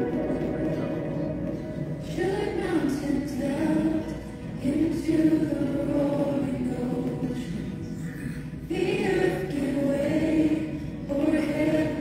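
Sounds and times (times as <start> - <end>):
choir singing slow worship song: 1.9 - 12.0.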